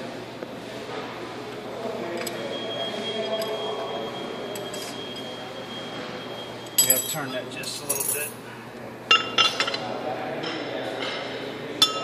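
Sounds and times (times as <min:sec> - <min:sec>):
workshop background noise: 0:00.0 - 0:12.0.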